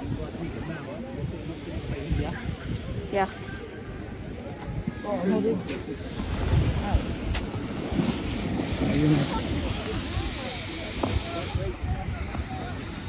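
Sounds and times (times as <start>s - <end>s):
faint voices: 0.0s - 13.0s
wind buffeting microphone: 0.0s - 13.0s.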